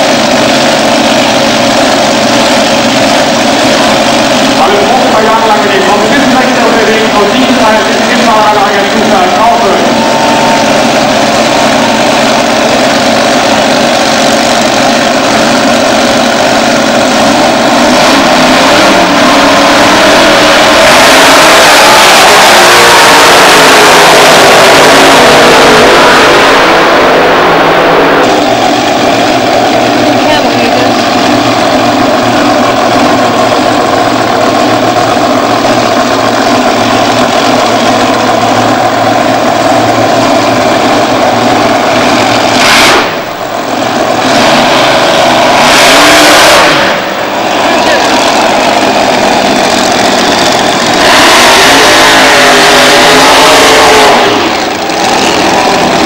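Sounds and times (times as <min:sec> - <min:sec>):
drag racing engines roaring: 0:00.0 - 0:56.0.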